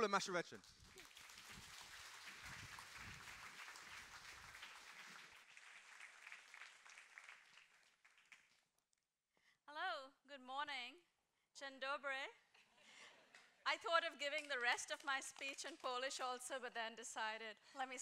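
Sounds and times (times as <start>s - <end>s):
audience applause: 0.0s - 8.6s.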